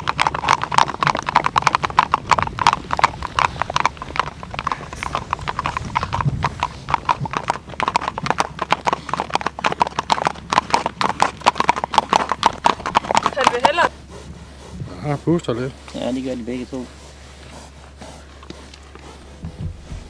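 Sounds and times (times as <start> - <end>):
hooves clicking on ice: 0.0 - 20.0.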